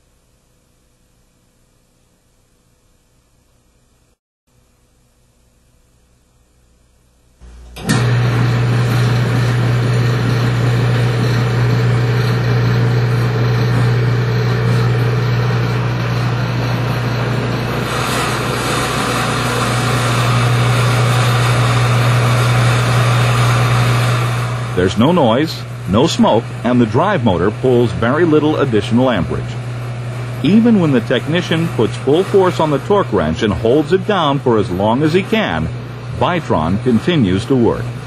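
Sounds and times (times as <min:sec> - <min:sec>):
electric motor humming: 0:07.4 - 0:38.0.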